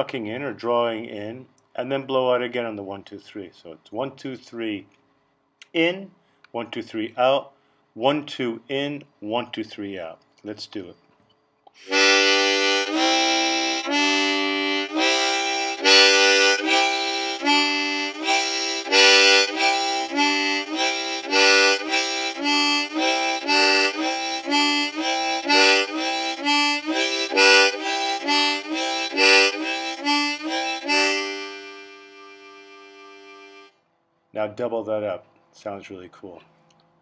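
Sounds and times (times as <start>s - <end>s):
harmonica playing chords: 11.8s - 33.8s.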